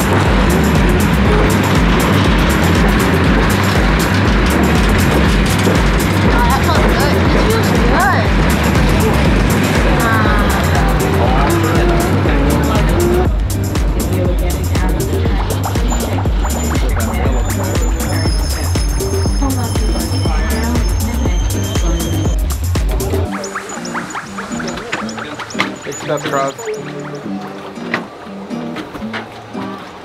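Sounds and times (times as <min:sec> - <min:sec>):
train wheels rumbling on track: 0:00.0 - 0:23.3
background music: 0:00.0 - 0:30.0
voices: 0:00.0 - 0:30.0.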